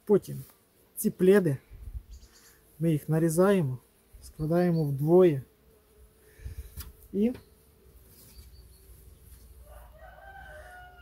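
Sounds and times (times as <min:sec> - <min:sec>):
faint rooster crowing: 0:09.4 - 0:11.0.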